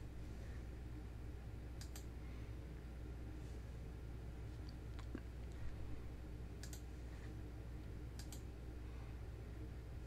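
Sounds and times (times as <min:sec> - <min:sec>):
faint low hum: 0:00.0 - 0:10.0
computer mouse clicks: 0:01.8 - 0:02.1, 0:06.6 - 0:06.9, 0:08.1 - 0:08.5.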